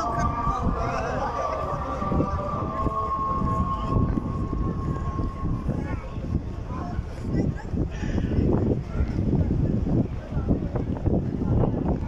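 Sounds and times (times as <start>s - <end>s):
call to prayer over loudspeakers: 0.0s - 12.0s.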